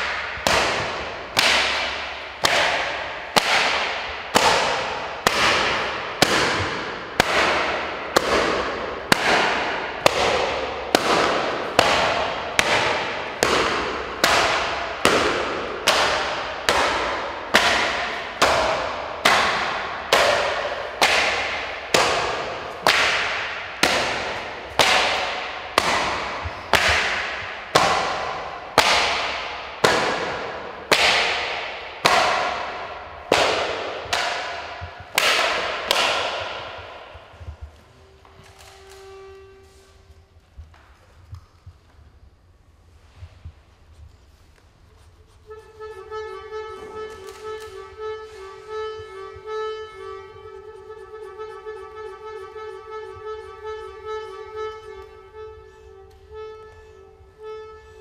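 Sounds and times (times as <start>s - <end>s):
sharp loud slaps with ringing: 0.0s - 37.1s.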